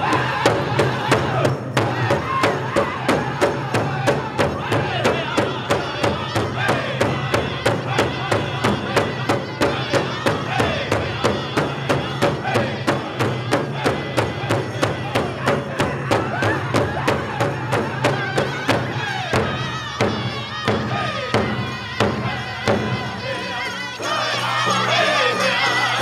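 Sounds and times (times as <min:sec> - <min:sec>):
large hide drum beating: 0:00.0 - 0:23.2
men and women singing: 0:00.0 - 0:26.0.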